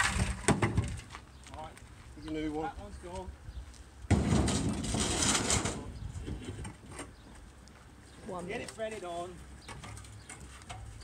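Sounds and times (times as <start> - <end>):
mixer drum scraping and rattling: 0.0 - 1.1, 4.1 - 7.1.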